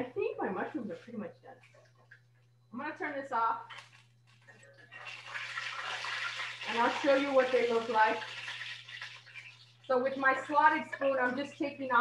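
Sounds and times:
mushrooms sizzling in hot oil: 0:05.0 - 0:10.2.

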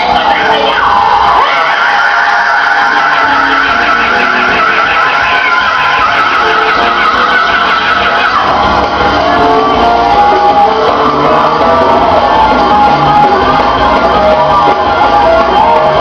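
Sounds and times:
gospel choir holding a high note: 0:00.0 - 0:16.0.

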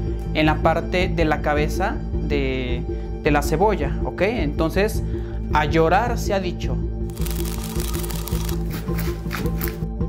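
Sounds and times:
background music: 0:00.0 - 0:10.0
knife crunching into onion: 0:07.1 - 0:09.8.

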